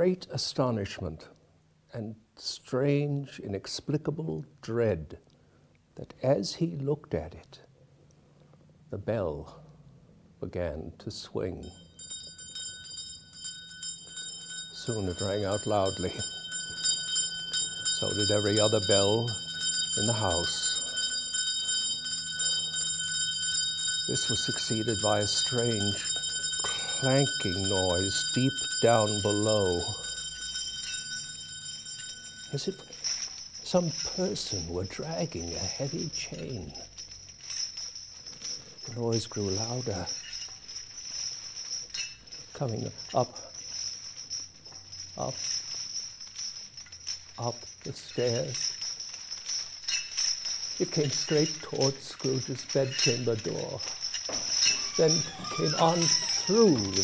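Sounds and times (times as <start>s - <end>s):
hanging house bell ringing: 11.5s - 57.0s
steady high hiss: 14.0s - 57.0s.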